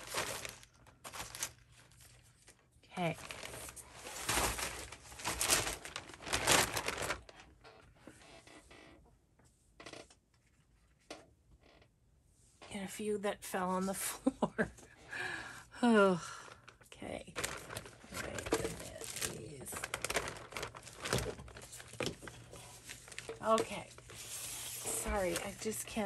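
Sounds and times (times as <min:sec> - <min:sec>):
paper scraps rustling: 0:00.0 - 0:07.4, 0:17.4 - 0:26.0
plastic bag crinkling: 0:00.0 - 0:07.6, 0:17.2 - 0:26.0.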